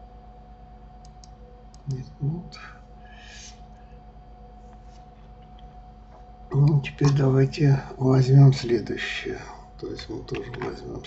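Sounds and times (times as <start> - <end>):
faint electrical hum: 0.0 - 11.0
computer mouse clicks: 1.0 - 2.0.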